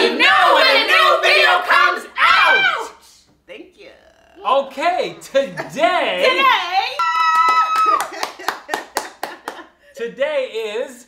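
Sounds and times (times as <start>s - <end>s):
people cheering: 7.0s - 8.6s
hands clapping: 7.0s - 9.7s.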